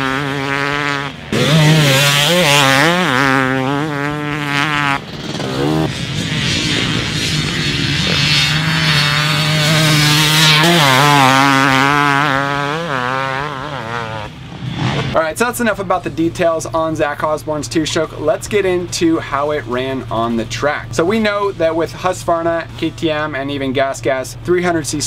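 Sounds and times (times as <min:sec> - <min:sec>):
motocross bike engine revving: 0:00.0 - 0:25.0.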